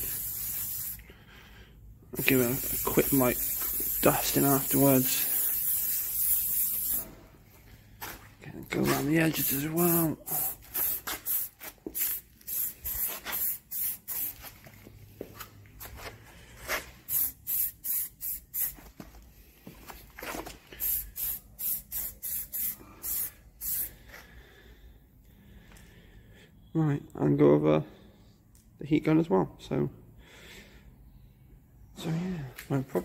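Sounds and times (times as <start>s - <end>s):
aerosol can spraying: 0.0s - 1.0s, 2.2s - 7.2s, 8.8s - 14.6s, 17.0s - 18.9s, 20.8s - 24.0s.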